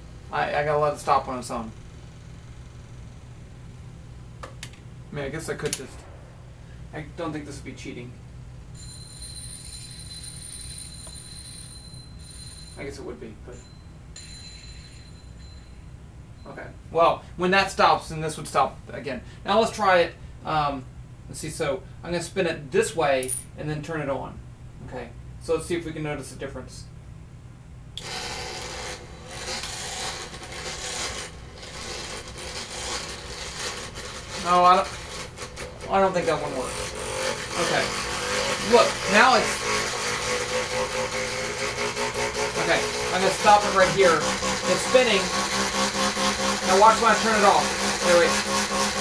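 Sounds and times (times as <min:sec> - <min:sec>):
low hum: 0:00.0 - 0:17.3, 0:26.8 - 0:41.8
high-pitched squeal of braked disk: 0:08.8 - 0:12.9
small electric motor whirring: 0:28.0 - 0:49.0.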